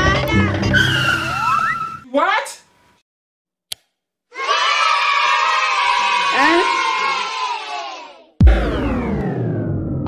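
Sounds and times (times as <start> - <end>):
cartoon skid screech: 0.7 - 2.1
short rising whistle: 0.7 - 2.1
upbeat intro music: 8.4 - 10.0.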